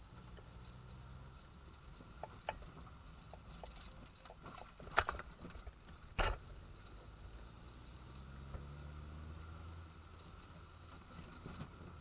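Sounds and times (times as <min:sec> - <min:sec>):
car engine drone from inside cabin: 0:00.0 - 0:04.8
road noise: 0:00.0 - 0:12.0.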